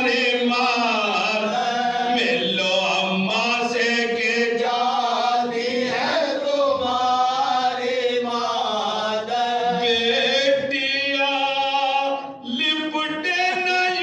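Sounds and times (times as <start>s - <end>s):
men chanting in unison: 0.0s - 14.0s.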